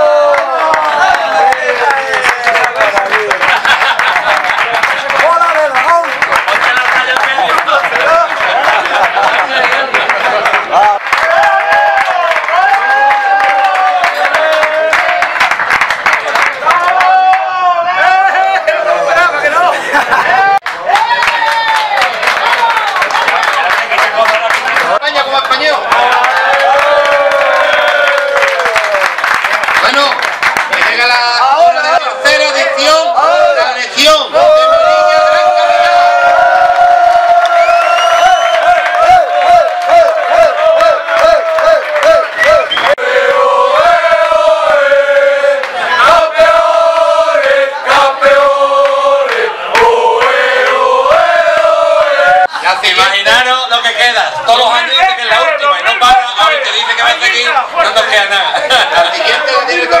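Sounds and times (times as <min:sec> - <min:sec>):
group clapping: 0:00.0 - 0:18.6, 0:20.1 - 0:33.0, 0:34.4 - 0:53.5
men chanting in unison: 0:38.9 - 0:52.5.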